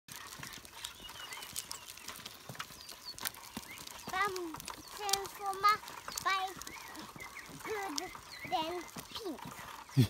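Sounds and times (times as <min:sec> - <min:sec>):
bike rolling over asphalt: 0:00.1 - 0:10.0
scuffing footsteps: 0:00.1 - 0:10.0
bird chirps: 0:00.3 - 0:10.0.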